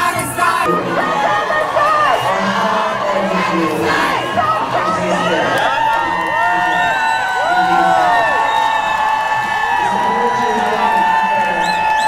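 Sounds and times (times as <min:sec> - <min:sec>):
crowd cheering and whooping: 0:00.6 - 0:12.0.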